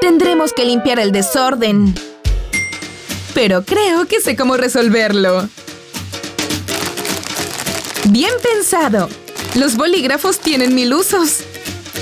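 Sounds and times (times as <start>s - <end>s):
background music with percussion: 1.8s - 3.9s, 5.3s - 7.9s.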